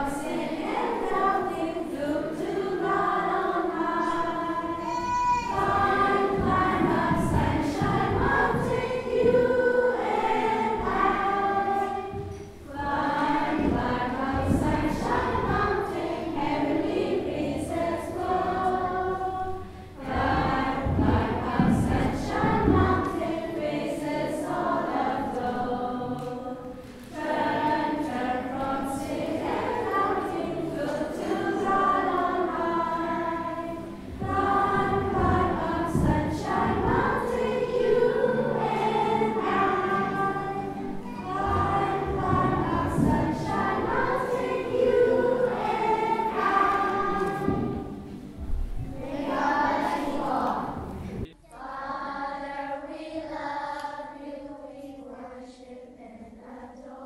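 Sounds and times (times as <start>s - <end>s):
children's choir singing: 0.0s - 57.0s.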